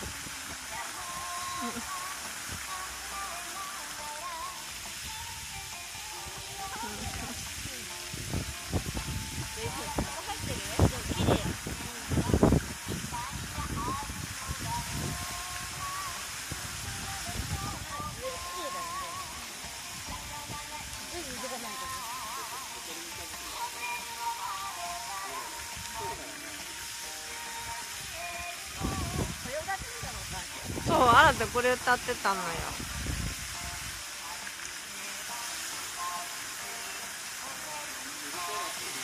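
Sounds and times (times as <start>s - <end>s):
song over loudspeakers: 0.0s - 39.0s
water jets spraying: 0.0s - 39.0s.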